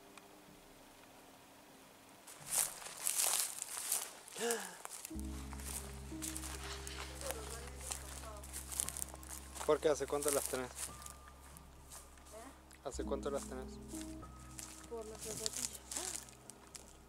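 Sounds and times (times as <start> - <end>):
faint background music: 0.0 - 17.0
footsteps crunching through dry grass: 2.2 - 17.0
low music drone: 5.1 - 17.0.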